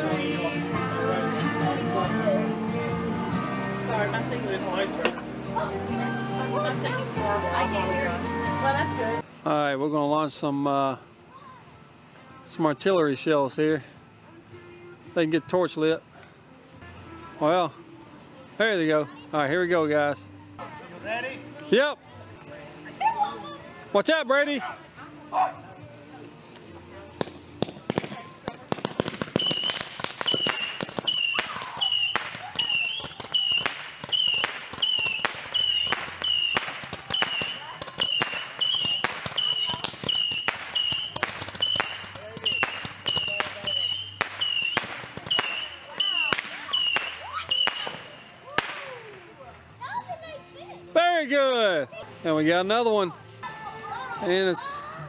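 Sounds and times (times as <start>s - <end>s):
fireworks reports with whistles: 27.1s - 49.5s.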